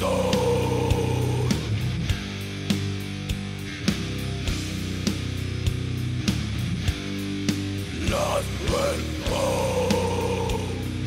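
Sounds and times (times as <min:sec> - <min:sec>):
death metal band playing: 0:00.0 - 0:11.0.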